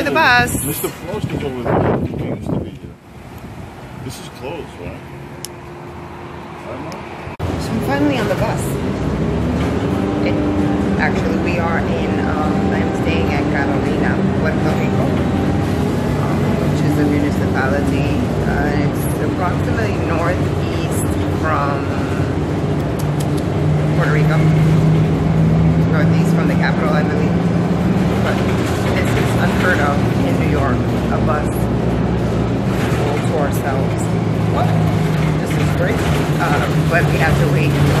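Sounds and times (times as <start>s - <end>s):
bus engine drone: 0.0s - 38.0s.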